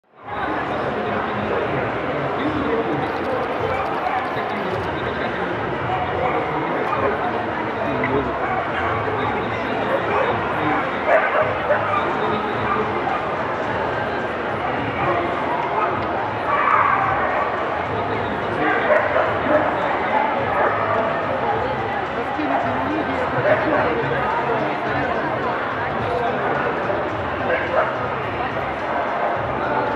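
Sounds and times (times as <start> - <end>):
crowd chatter in a hall: 0.0 - 29.9
dogs barking and yipping: 3.2 - 4.4, 9.9 - 13.2, 18.6 - 19.7
dog barking: 8.4 - 9.0, 11.1 - 12.9, 18.6 - 19.7.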